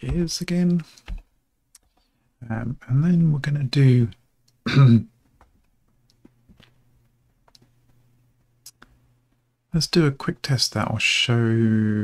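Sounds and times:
man clearing his throat: 4.7s - 5.1s.

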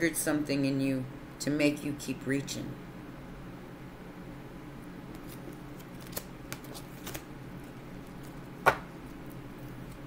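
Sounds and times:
low steady hum: 0.0s - 10.0s
cards snapping and clicking: 5.1s - 7.3s.

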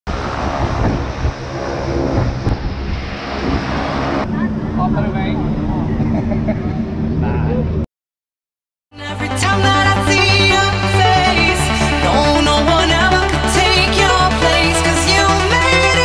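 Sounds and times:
propeller aircraft engine drone: 0.1s - 7.8s
people talking: 4.2s - 7.7s.

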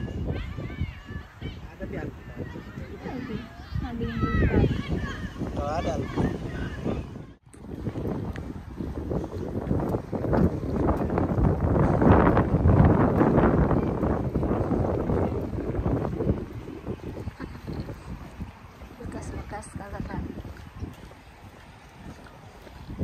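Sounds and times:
wind on microphone: 0.0s - 23.0s
stroller rolling over grass: 7.5s - 23.0s.

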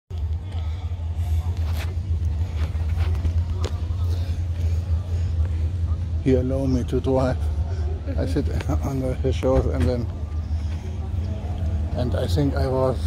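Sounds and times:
faint background voices: 0.1s - 13.0s.

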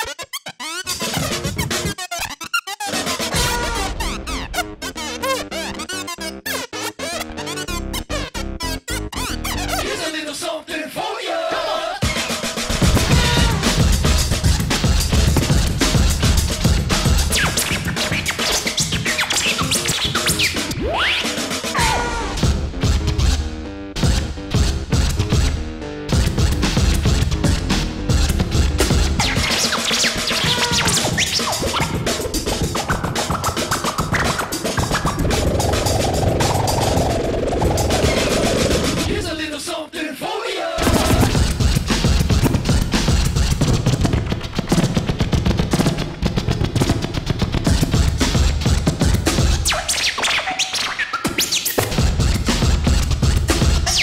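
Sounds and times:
turntable scratching: 0.0s - 10.2s, 11.5s - 23.4s, 26.2s - 39.4s, 40.8s - 54.0s
dj mix beat with heavy hits: 0.9s - 6.0s, 12.0s - 23.4s, 24.0s - 39.4s, 40.8s - 54.0s
heavy bass: 3.2s - 5.7s, 12.1s - 17.5s, 20.6s - 29.4s, 40.8s - 49.7s, 51.8s - 54.0s
stepped pitched notes: 12.0s - 21.6s, 26.2s - 39.1s.

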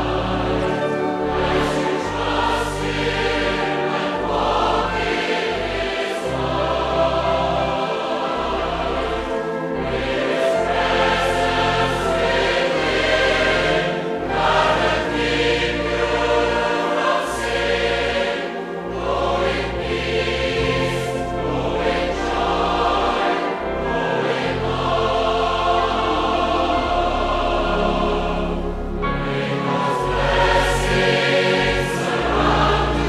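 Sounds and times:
choir singing: 0.0s - 33.0s
low accompaniment: 0.0s - 33.0s.

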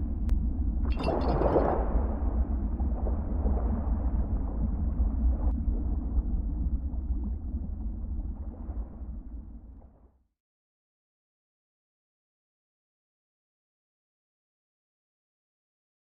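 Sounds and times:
deep low rumble: 0.0s - 10.2s.

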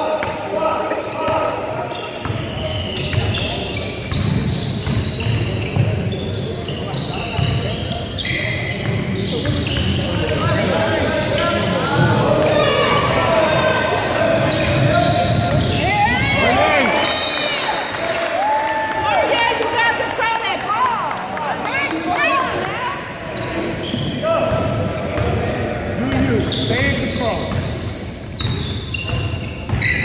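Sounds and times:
sneaker squeaks: 0.0s - 18.2s, 21.7s - 30.0s.

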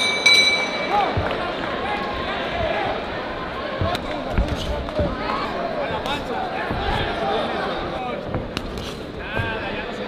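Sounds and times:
arena crowd: 0.0s - 10.0s
thuds from boxing ring: 6.6s - 7.3s.

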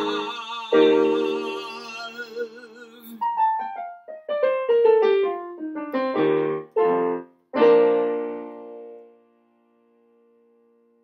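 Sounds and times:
digital piano playing: 0.0s - 9.3s.

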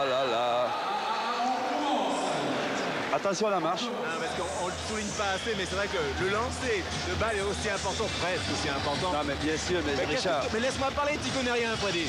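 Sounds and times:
arena crowd reacting: 0.0s - 7.8s.

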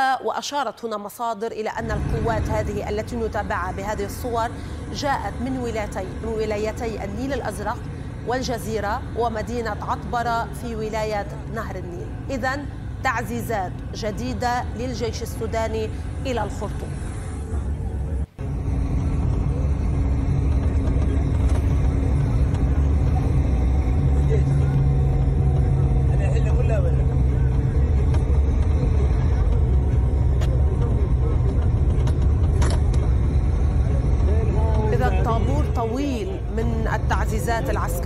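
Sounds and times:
vehicle engine and road rumble: 1.8s - 38.0s.

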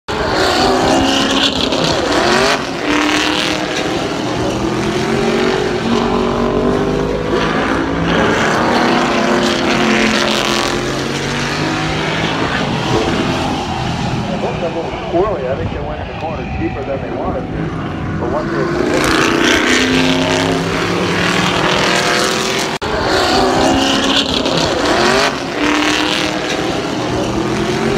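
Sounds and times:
race car engines revving: 0.1s - 27.9s.

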